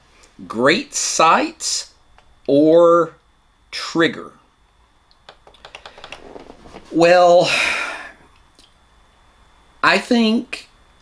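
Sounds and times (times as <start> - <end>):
rapid small clicks and ticks: 5.1 - 6.2.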